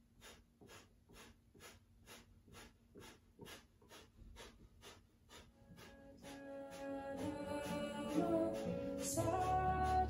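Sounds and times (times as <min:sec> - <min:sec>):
quick forceful nasal breaths: 0:00.0 - 0:09.1.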